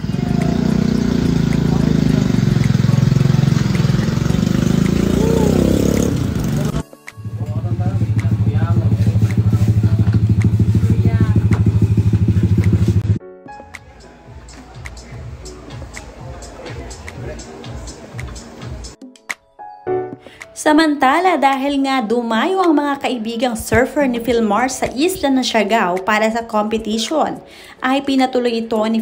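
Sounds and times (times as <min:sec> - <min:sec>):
motorcycle engine running: 0:00.0 - 0:13.2.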